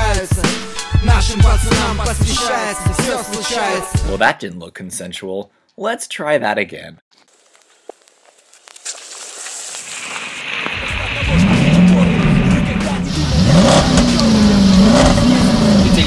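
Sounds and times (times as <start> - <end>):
tyres splashing through water: 8.8 - 16.0
car engine revving: 10.5 - 16.0.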